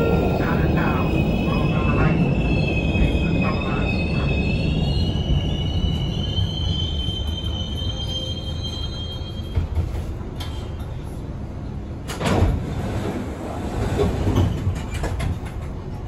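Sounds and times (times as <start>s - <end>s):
subway car wheels rumbling: 0.0s - 16.0s
high wheel squeal: 2.5s - 9.6s.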